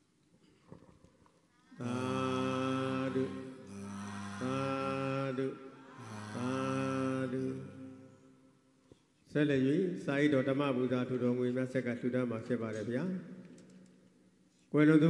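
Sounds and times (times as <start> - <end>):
man chanting: 1.8 - 8.2.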